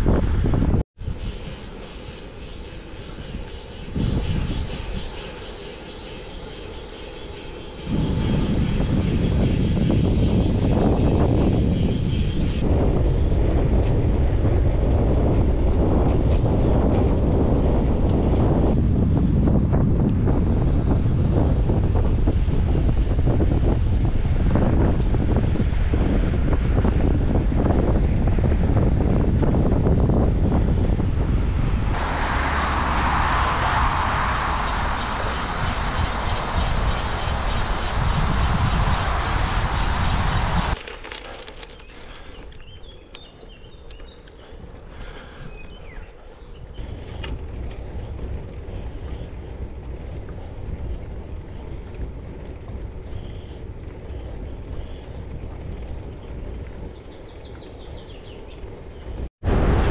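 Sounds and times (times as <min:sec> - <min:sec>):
wind rumbling on microphone: 0:00.0 - 0:59.9.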